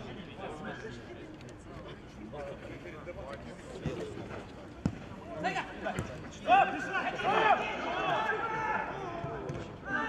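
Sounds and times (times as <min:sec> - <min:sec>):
players shouting: 0:06.4 - 0:10.0.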